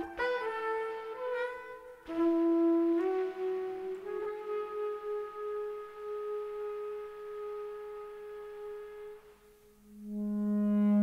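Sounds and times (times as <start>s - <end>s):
long-held jazz note: 0.0s - 11.0s.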